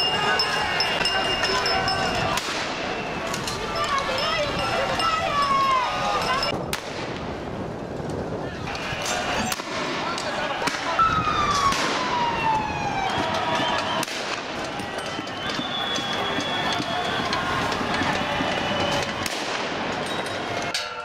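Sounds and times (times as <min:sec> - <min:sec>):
police siren wailing: 0:10.4 - 0:19.3.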